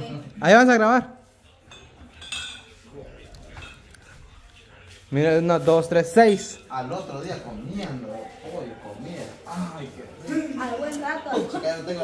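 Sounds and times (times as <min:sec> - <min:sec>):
glass bottles clinking: 0:01.7 - 0:02.8.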